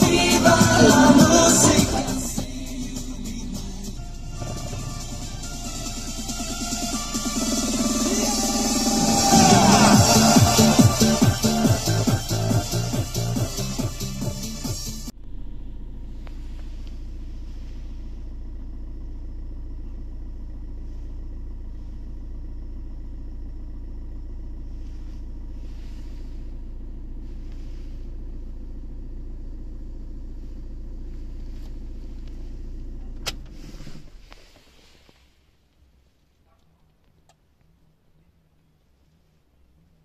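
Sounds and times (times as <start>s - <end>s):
car engine idling: 0.0s - 40.0s.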